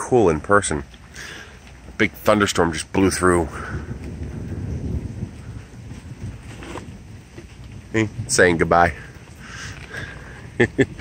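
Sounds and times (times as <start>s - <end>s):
light rain hiss: 0.0s - 11.0s
distant thunder rumble: 3.1s - 11.0s.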